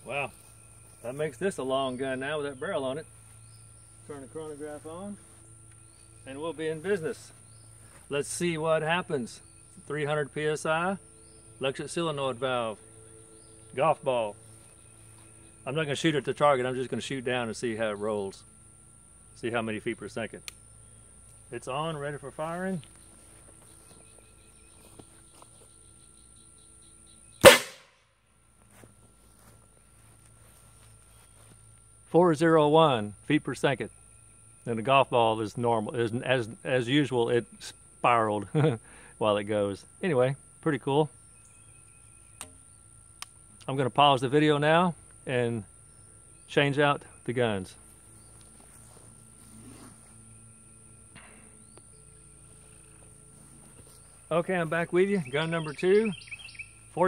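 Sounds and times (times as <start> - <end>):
high-pitched insect drone: 0.0 - 57.0
air cannon blast: 27.4 - 27.9
faint rustle: 28.5 - 31.8, 47.7 - 54.4.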